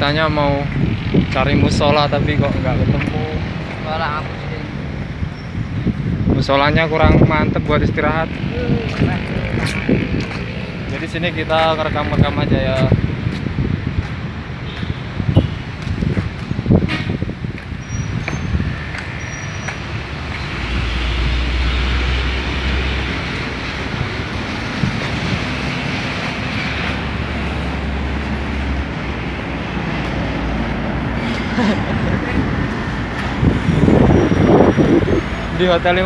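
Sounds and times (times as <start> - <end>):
road traffic: 0.0 - 36.0.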